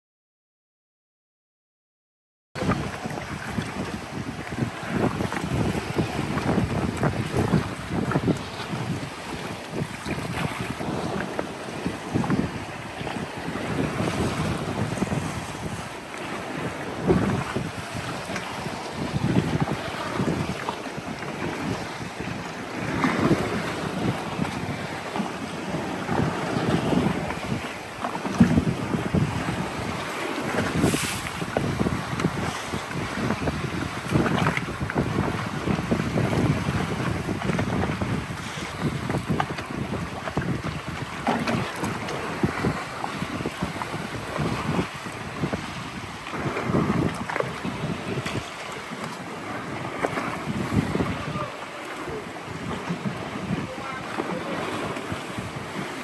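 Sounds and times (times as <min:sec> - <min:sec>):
paddle splashes: 0:02.6 - 0:56.0
waves washing against rock: 0:02.6 - 0:56.0
wind buffeting microphone: 0:02.6 - 0:56.0.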